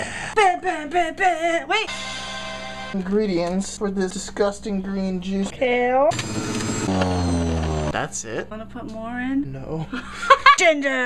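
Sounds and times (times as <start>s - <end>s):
juicer motor hum: 6.1s - 8.0s
juicer shredding leaves: 6.1s - 8.0s.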